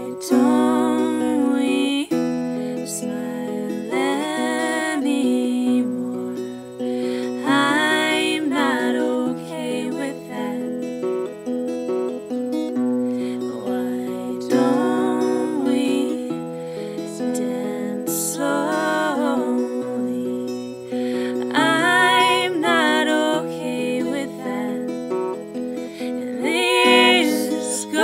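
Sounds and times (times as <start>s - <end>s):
woman singing: 0.0s - 11.0s, 13.2s - 25.2s, 25.8s - 28.0s
acoustic guitar chords: 0.0s - 28.0s.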